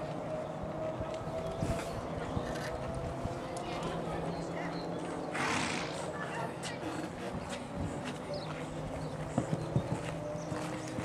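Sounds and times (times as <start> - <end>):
horse hoofbeats on sand: 7.3 - 11.0.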